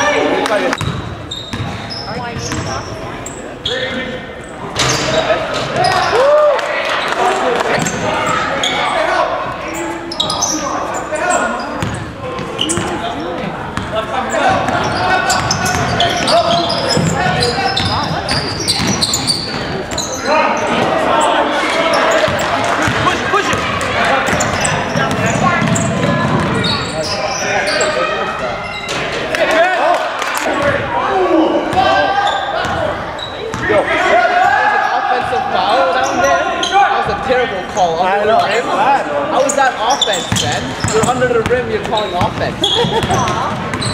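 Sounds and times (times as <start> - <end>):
people calling out and talking: 0.0 - 43.9.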